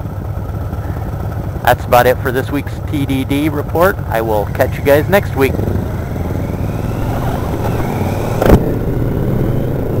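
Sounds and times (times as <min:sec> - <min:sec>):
motorcycle engine running: 0:00.0 - 0:10.0
sharp thump: 0:07.5 - 0:08.8.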